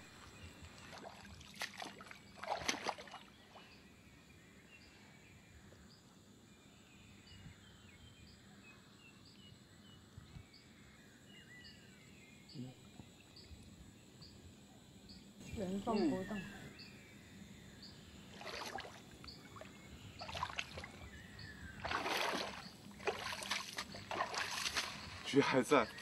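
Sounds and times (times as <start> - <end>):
faint twittering calls: 0.0 - 26.0
insect chirping: 0.0 - 26.0.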